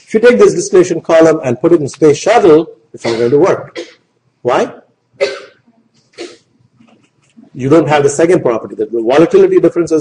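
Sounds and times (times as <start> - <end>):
person coughing: 3.0 - 4.1, 5.2 - 6.5.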